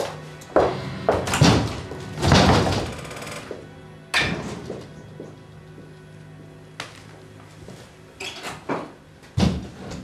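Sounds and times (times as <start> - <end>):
footsteps on hard floor: 0.0 - 2.1
soft background music: 0.0 - 10.0.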